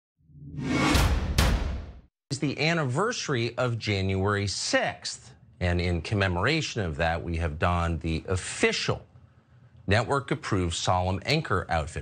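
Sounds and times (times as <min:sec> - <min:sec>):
whoosh: 0:00.3 - 0:02.1
sharp hits: 0:00.5 - 0:02.1.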